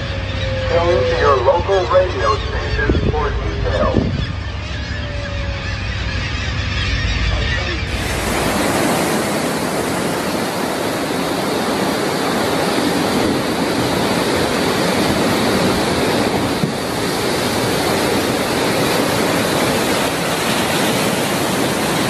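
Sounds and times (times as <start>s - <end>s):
heavy waves breaking: 0.0s - 22.0s.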